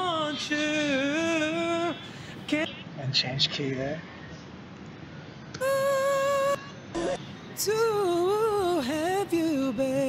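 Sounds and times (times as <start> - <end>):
man singing high note: 5.6 - 6.6.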